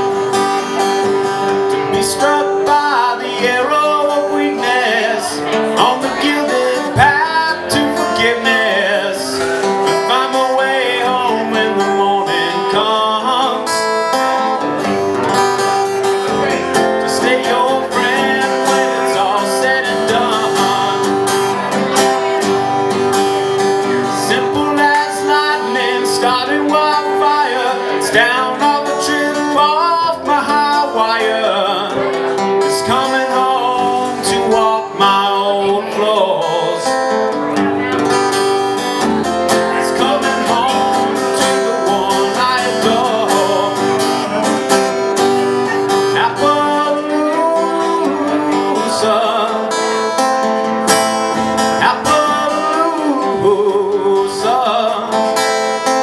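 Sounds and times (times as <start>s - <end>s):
acoustic guitar strumming: 0.0s - 56.0s
man singing: 0.0s - 56.0s.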